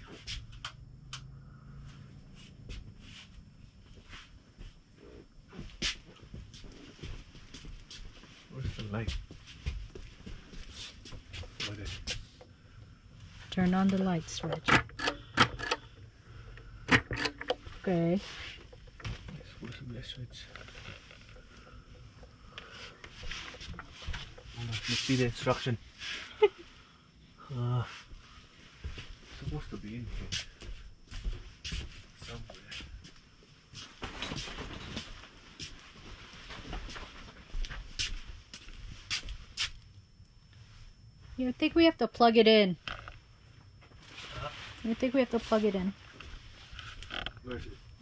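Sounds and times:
sharp clicks and light knocks: 0:13.9 - 0:24.6
rustling: 0:15.2 - 0:25.4.

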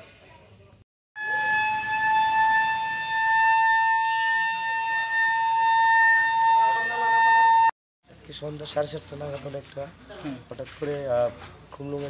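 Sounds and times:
loud siren-like tone: 0:01.2 - 0:07.8.

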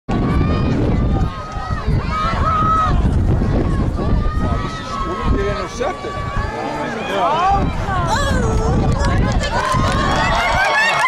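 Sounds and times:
spectators calling out and talking: 0:00.1 - 0:11.0.

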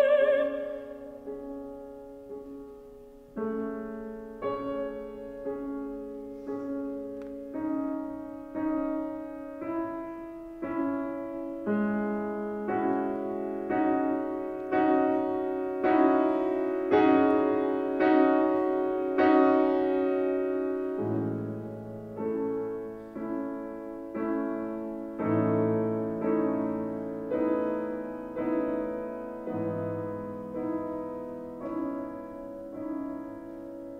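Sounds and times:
piano bass notes: 0:00.0 - 0:33.9
piano playing slow chords: 0:00.0 - 0:33.9.

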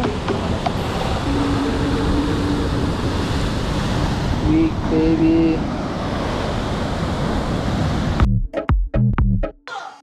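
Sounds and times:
surf breaking on rocks: 0:00.0 - 0:08.2
wind on microphone: 0:00.0 - 0:08.2.

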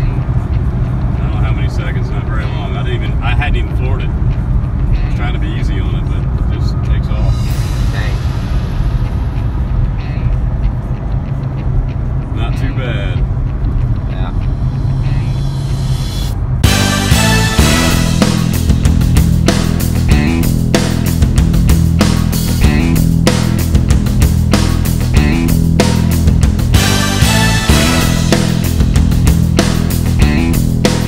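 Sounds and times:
car road and engine drone: 0:00.0 - 0:31.0.

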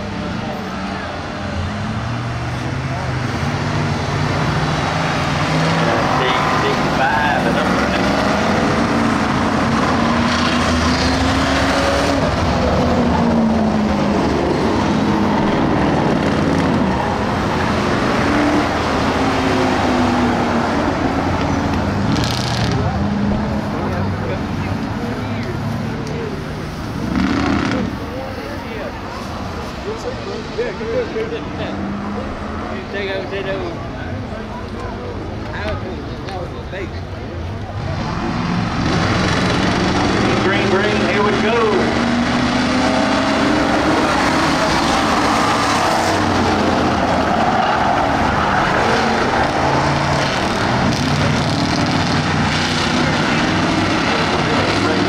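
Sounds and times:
race car engines roaring past: 0:00.0 - 0:55.0.

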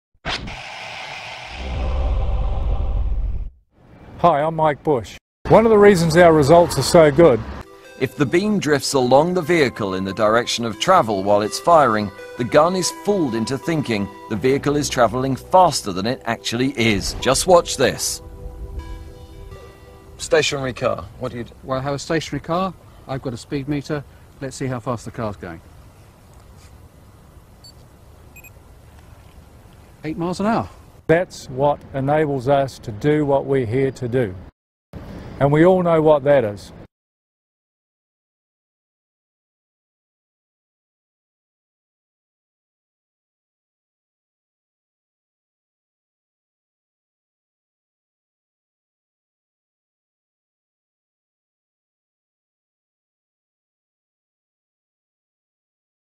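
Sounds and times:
sudden hit: 0:00.2 - 0:03.5
whooshing rush with deep rumble: 0:00.3 - 0:03.6
low background hiss: 0:20.0 - 0:33.3.

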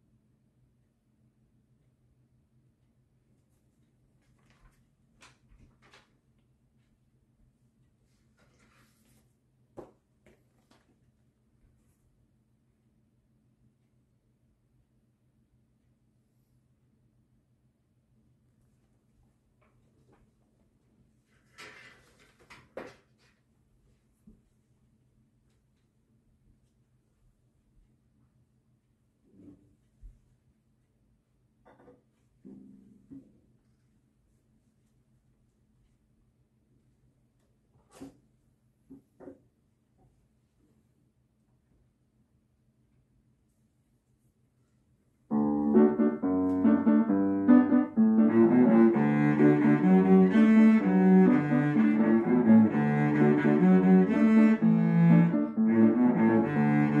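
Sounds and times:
rustling and handling noise: 0:03.4 - 0:07.0, 0:07.8 - 0:12.1.

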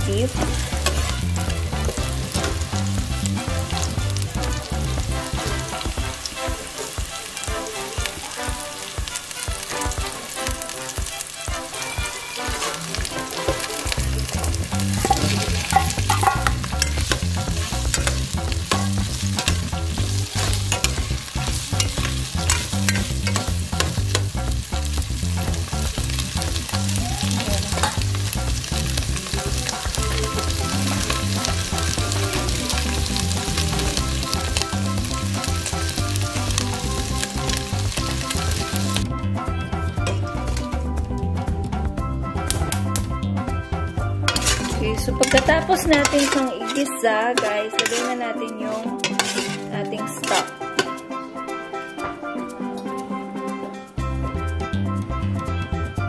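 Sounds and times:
onion frying in oil: 0:00.0 - 0:41.6, 0:44.2 - 0:50.9
metal spoon scraping a pot: 0:00.4 - 0:01.6, 0:12.5 - 0:23.9, 0:44.3 - 0:51.0.

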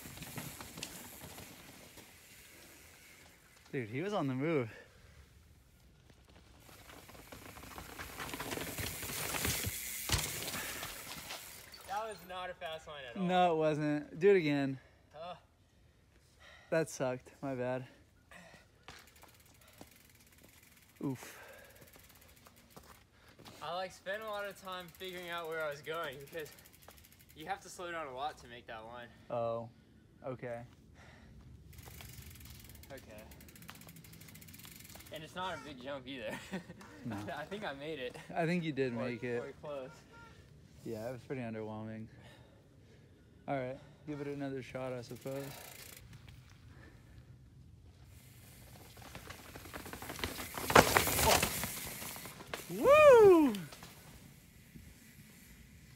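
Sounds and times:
bike tyres crunching on dirt: 0:00.0 - 0:13.0, 0:18.4 - 0:28.4, 0:31.4 - 0:41.6, 0:44.6 - 0:55.9
bike freewheel hub clicking: 0:06.6 - 0:12.1, 0:18.9 - 0:23.0, 0:24.1 - 0:27.7, 0:31.6 - 0:35.5, 0:44.9 - 0:46.5.

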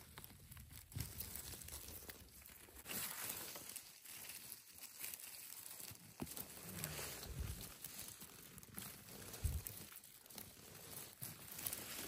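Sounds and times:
rustling of moss and twigs: 0:00.0 - 0:12.0.

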